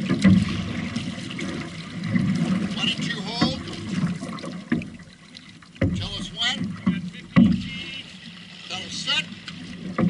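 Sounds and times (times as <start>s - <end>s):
water lapping against hull: 0.0s - 10.0s
short knocks: 5.8s - 7.8s.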